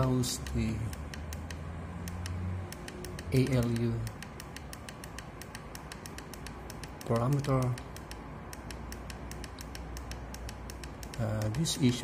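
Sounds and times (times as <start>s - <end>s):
fast even ticking: 0.0s - 12.0s
low background hum: 0.0s - 12.0s.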